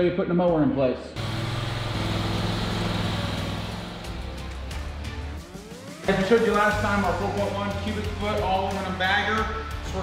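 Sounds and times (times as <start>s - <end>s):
lawn mower engine running: 1.2s - 6.0s.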